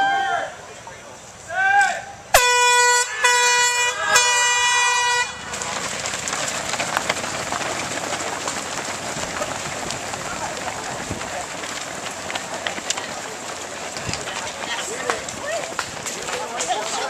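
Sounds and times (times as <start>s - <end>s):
crowd noise: 0.0s - 17.0s
air horn blasts: 2.3s - 5.5s
runners' footsteps on road: 2.4s - 17.0s.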